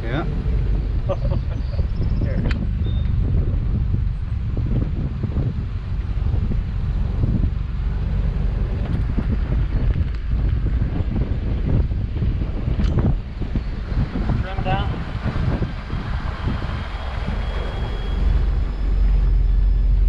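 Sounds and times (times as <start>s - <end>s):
powerboat engine low rumble: 0.0s - 20.0s
wind buffeting microphone: 0.0s - 20.0s.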